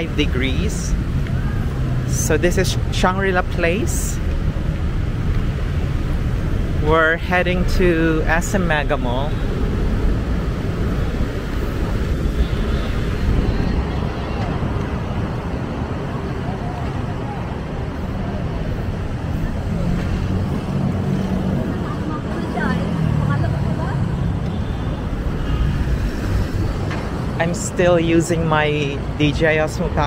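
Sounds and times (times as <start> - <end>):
steady traffic noise: 0.0 - 30.0
passersby talking faintly: 13.1 - 24.6.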